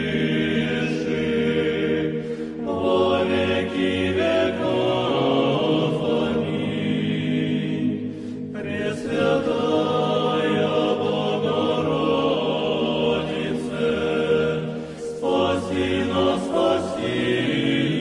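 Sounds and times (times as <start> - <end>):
voices chanting together: 0.0 - 18.0.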